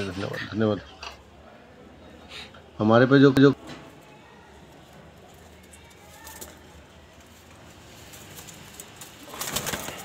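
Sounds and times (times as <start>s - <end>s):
pigeon wings flapping: 8.2s - 10.0s.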